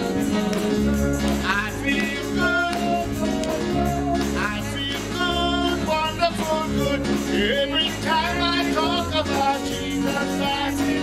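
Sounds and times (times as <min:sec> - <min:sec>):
band with keyboard and drums: 0:00.0 - 0:11.0.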